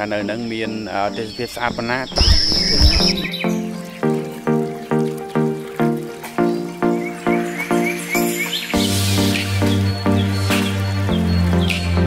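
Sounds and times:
bird chirps: 0.0s - 12.0s
music with repeated pitched notes: 0.0s - 12.0s.

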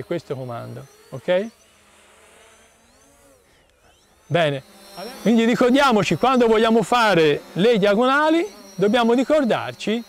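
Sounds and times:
drone propellers buzzing: 0.0s - 10.0s.

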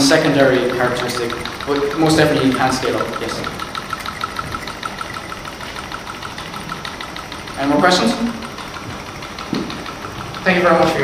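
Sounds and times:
small engine mechanical ticking: 0.0s - 11.0s.

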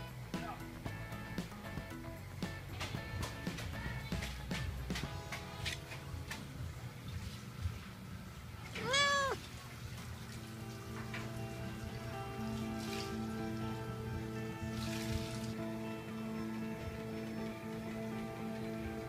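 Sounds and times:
soft background music: 0.0s - 19.0s
cat meowing: 8.7s - 9.5s.

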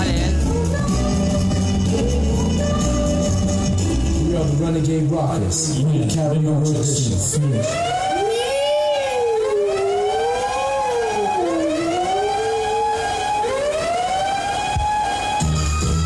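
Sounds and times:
drums: 0.0s - 5.8s, 14.7s - 16.0s
siren-like swooping tones: 7.3s - 16.0s.

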